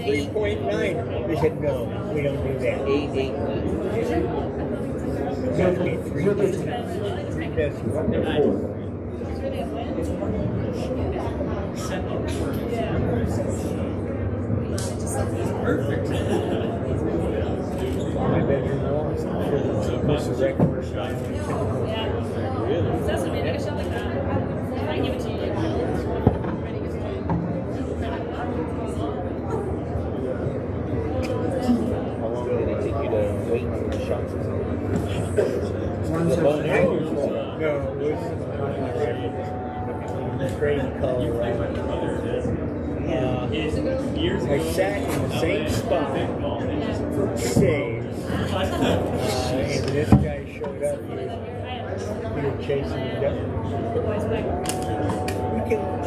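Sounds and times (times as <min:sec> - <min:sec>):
people talking indistinctly: 0:00.0 - 0:56.0.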